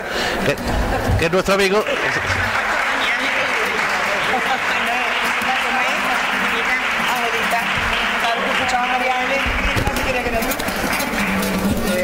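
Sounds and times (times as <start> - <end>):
voices talking: 0.5 - 12.0.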